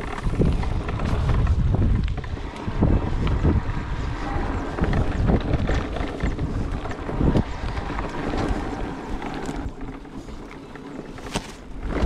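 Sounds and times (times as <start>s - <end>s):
bike knocks and rattles: 0.0s - 12.0s
wind rushing over microphone: 0.0s - 12.0s.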